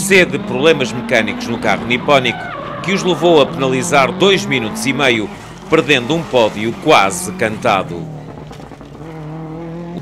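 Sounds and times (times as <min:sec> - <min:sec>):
rally car engine under load: 0:00.0 - 0:10.0.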